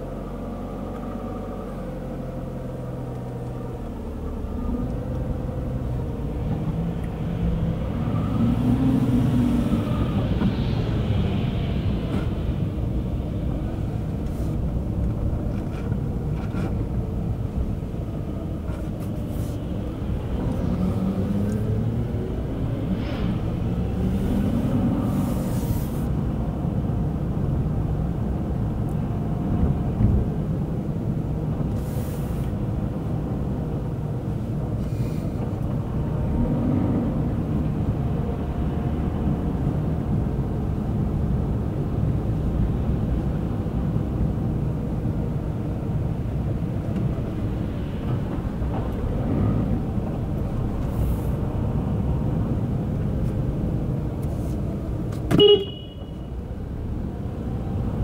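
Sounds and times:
car engine while driving: 0:00.0 - 0:58.0.

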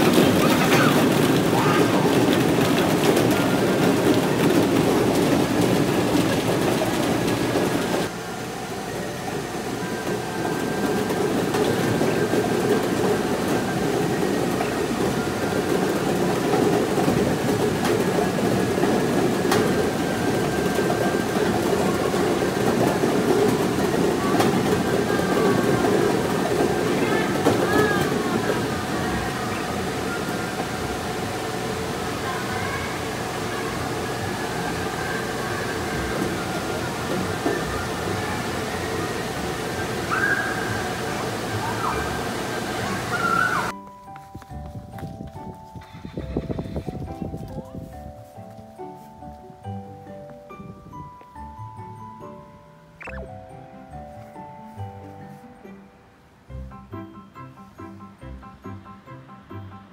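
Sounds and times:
plastic balls clattering: 0:00.0 - 0:08.1
faint electronic tones: 0:53.0 - 0:53.4.

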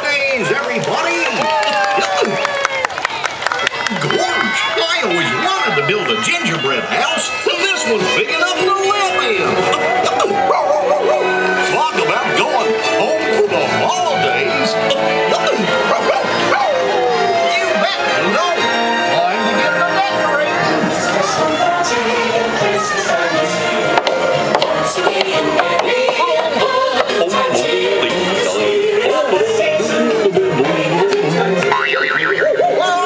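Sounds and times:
parade music from speakers: 0:03.4 - 0:33.0
cartoon dog barking: 0:09.7 - 0:11.4, 0:14.8 - 0:16.8, 0:31.7 - 0:32.8.

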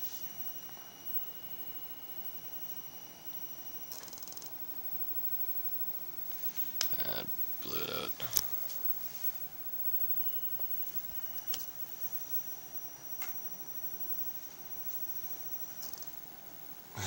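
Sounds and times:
high-pitched electrical whine: 0:00.0 - 0:17.0.

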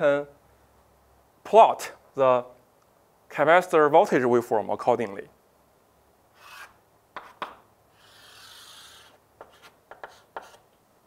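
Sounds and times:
chalk scraping on chalkboard: 0:06.4 - 0:10.7
chalk tapping on chalkboard: 0:06.5 - 0:10.6.

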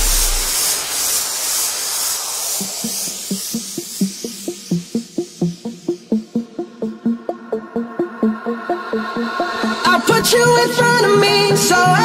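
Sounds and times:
short plucked synth notes: 0:00.0 - 0:00.5
deep sub-bass: 0:00.0 - 0:00.6
electronic dance music: 0:00.0 - 0:00.7, 0:03.0 - 0:12.0
white-noise sweep: 0:00.0 - 0:09.9.

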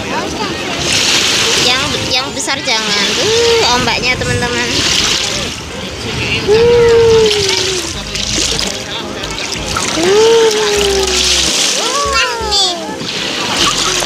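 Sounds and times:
small waves washing on sand: 0:00.1 - 0:14.0
splashing in shallow water: 0:00.7 - 0:14.0.

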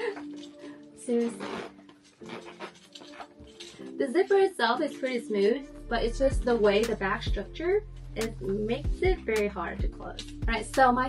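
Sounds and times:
metal zipper scraping: 0:00.0 - 0:04.3
soft background music: 0:00.0 - 0:11.0.

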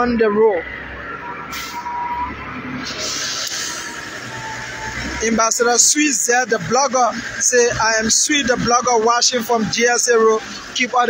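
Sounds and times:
vehicle engine humming: 0:00.0 - 0:11.0
hiss: 0:02.8 - 0:04.2.

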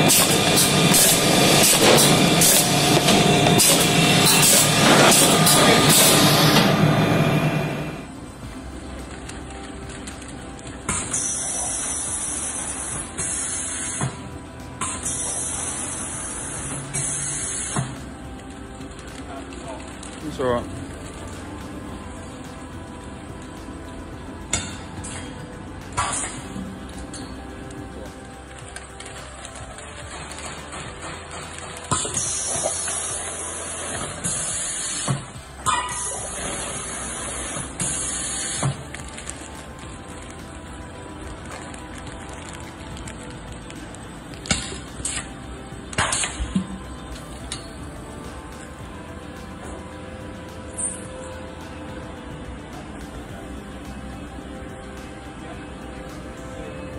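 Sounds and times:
machine humming: 0:00.0 - 0:56.9.

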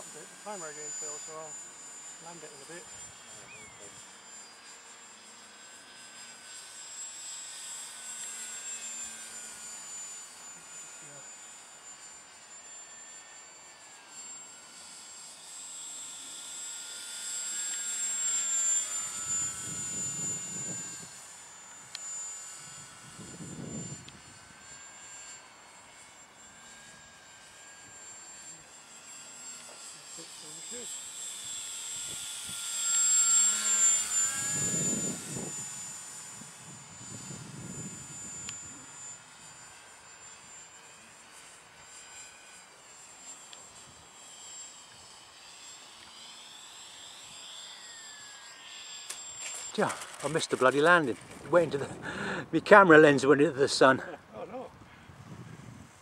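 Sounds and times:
model plane motor whine: 0:00.0 - 0:56.0.

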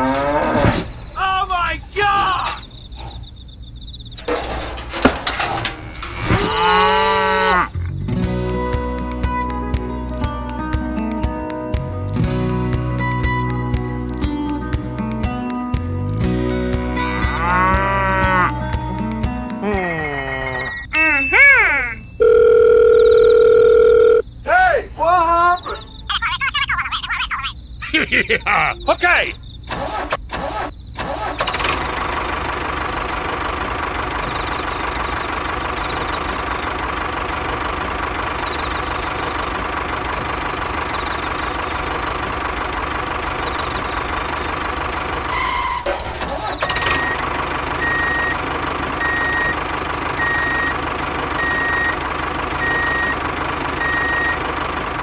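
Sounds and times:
squeaky cartoon voices: 0:19.6 - 0:22.2, 0:24.5 - 0:29.4
small tractor engine running: 0:29.7 - 0:55.0
reversing beep: 0:46.6 - 0:48.4, 0:49.0 - 0:49.6, 0:50.2 - 0:50.8, 0:51.4 - 0:52.0, 0:52.6 - 0:53.2, 0:53.8 - 0:54.5.

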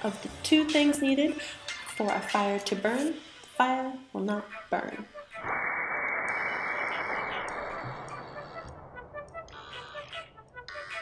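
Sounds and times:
background music: 0:00.0 - 0:05.4
slowed whoosh of vapour igniting: 0:05.4 - 0:08.8.

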